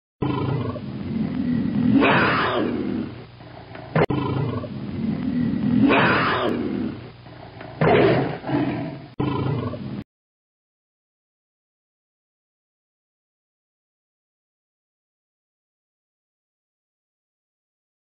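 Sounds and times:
big cat roaring: 0.2 - 3.2, 3.9 - 7.1, 7.8 - 10.0
low growling: 0.2 - 10.0.

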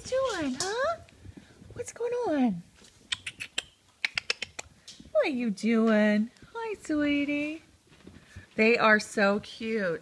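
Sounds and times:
puppies' paws clicking and tapping: 0.0 - 2.2.

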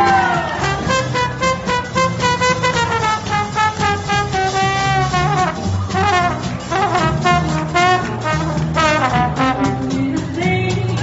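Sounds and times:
drums steady beat: 0.0 - 11.0
trombone sliding note: 0.5 - 9.9.

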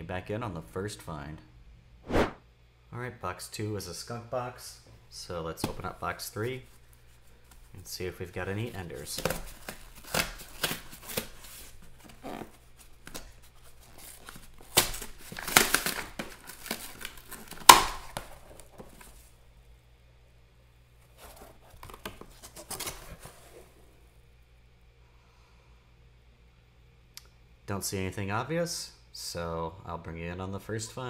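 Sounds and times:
cardboard rustling: 5.6 - 19.3, 21.1 - 23.9
cardboard box ripping: 9.1 - 18.4.

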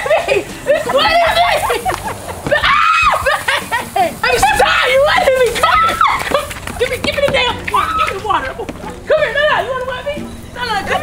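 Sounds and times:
woman laughing: 0.0 - 6.6
woman squealing: 2.5 - 3.4, 4.2 - 6.6.

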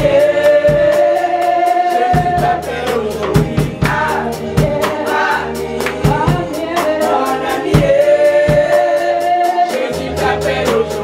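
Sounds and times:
congregation singing: 0.0 - 11.0
steady beat: 0.0 - 11.0.

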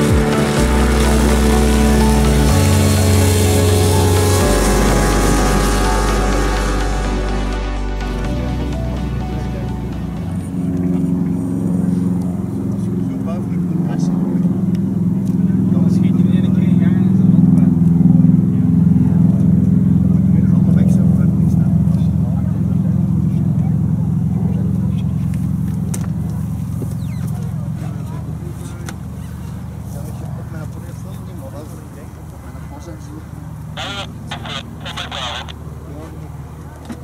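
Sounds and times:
engine running with low drone: 0.0 - 37.0
people's voices: 0.0 - 37.0.

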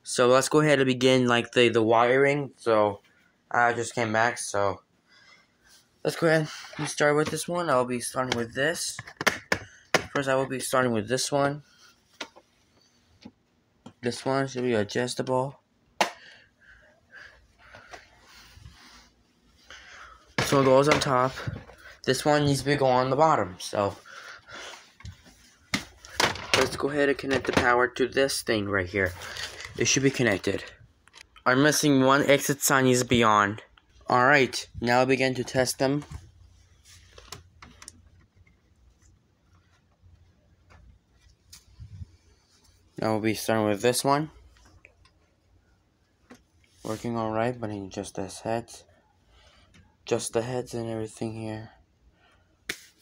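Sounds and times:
breaths close to microphone: 5.0 - 6.9, 16.1 - 20.4, 23.9 - 26.2
handling noises and rustling: 20.2 - 24.0, 28.8 - 31.4.

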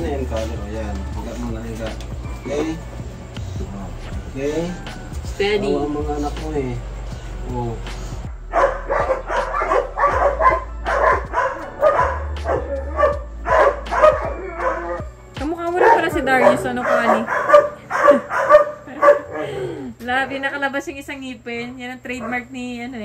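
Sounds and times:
background music with bass: 0.0 - 20.6
puppies yelping: 8.3 - 19.6.

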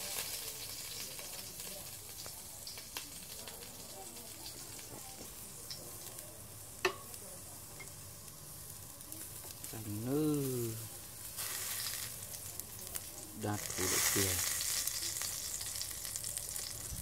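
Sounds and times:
meat sizzling on a grill: 0.0 - 17.0.

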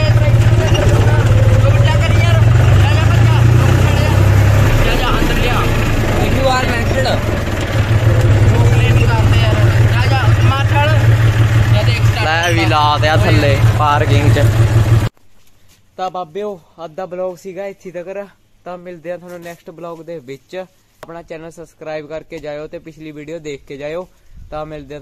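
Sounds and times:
tractor diesel engine running: 0.0 - 15.1.

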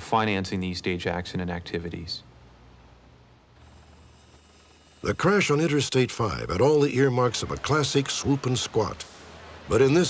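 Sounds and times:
faint background hum: 0.0 - 10.0
high-pitched electronic whine: 3.5 - 7.1.

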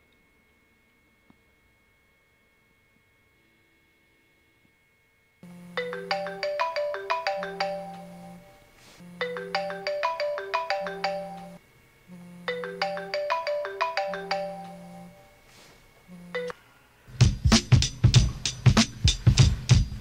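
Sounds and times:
low buzz: 5.4 - 6.1, 11.5 - 12.6, 16.0 - 16.5
phone ringtone bell-like notes: 5.8 - 11.6, 12.5 - 15.4.

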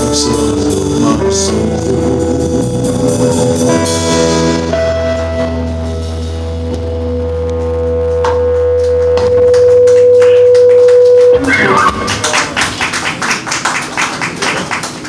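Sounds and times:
audience applause: 8.8 - 15.0.

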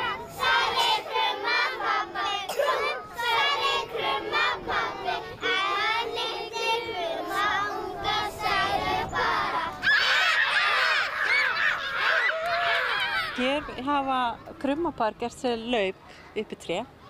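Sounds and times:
children singing in unison: 0.0 - 9.9
children calling out: 2.2 - 3.8, 9.1 - 13.8.

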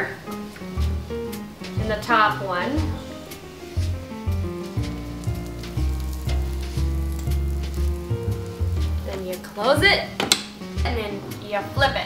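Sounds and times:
background music with held notes: 0.0 - 12.0
waffle batter sizzling: 0.8 - 10.8.

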